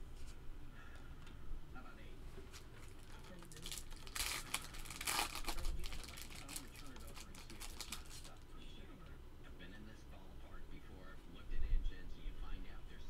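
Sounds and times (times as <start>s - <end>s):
cards rustling: 2.4s - 8.4s
foil wrapper tearing and crinkling: 2.8s - 8.4s.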